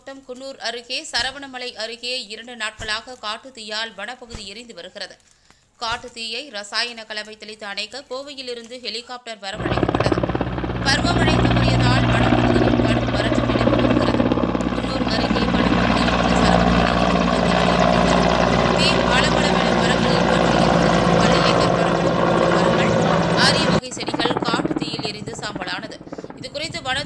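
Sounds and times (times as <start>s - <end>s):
helicopter engine drone: 9.6s - 27.0s
helicopter rotor blades beating: 9.6s - 27.0s.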